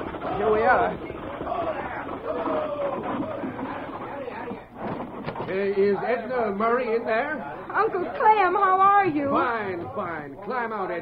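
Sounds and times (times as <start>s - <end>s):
indistinct voices: 0.0s - 10.5s.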